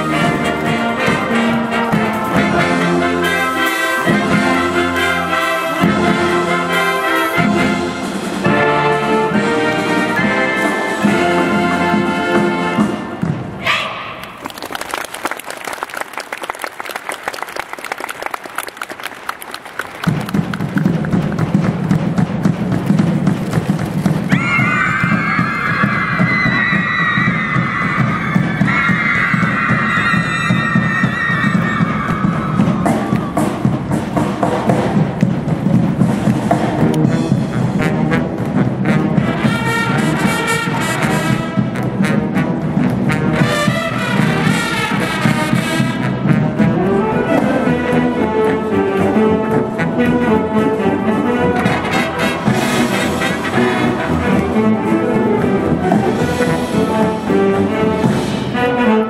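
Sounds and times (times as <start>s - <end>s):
bright brass melody: 0.0s - 13.3s, 36.5s - 59.0s
low brass part: 0.0s - 13.8s, 36.2s - 59.0s
marching band playing: 0.0s - 59.0s.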